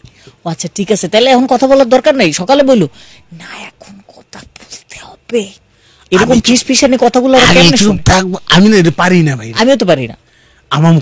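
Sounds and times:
person whispering: 3.3s - 5.4s.

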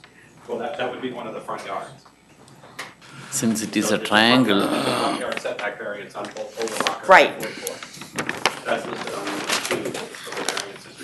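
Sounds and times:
murmured speech: 3.4s - 5.6s, 6.3s - 8.0s.

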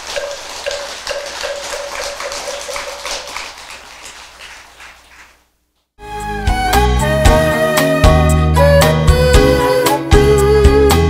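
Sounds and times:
audience applauding: 0.0s - 5.4s.

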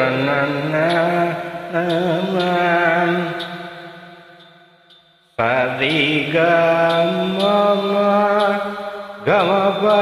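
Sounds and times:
man singing ornamented notes: 0.0s - 10.0s.

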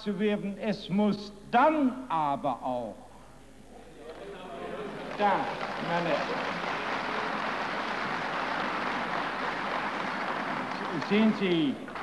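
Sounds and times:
crowd applauding: 4.1s - 12.0s.

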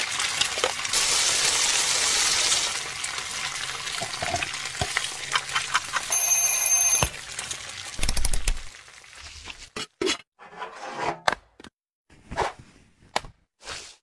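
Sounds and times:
food sizzling in a frying pan: 0.0s - 9.6s
alarm clock ringing: 6.1s - 7.1s.

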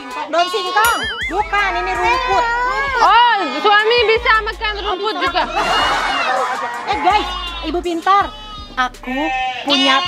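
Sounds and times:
young livestock bleating: 7.0s - 10.0s.

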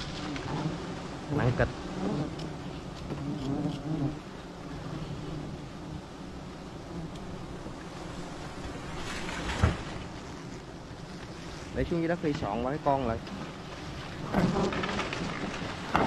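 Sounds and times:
honeybees buzzing: 0.0s - 16.0s
thump: 9.1s - 10.0s.

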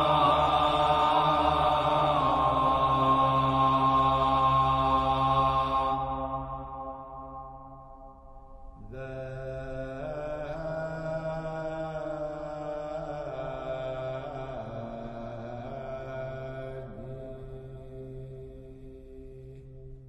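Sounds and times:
low drone: 0.0s - 20.0s
slow sacred chant music: 0.0s - 20.0s.

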